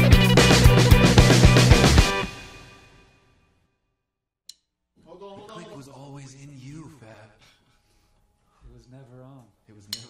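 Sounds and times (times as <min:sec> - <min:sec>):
music: 0:00.0 - 0:03.9.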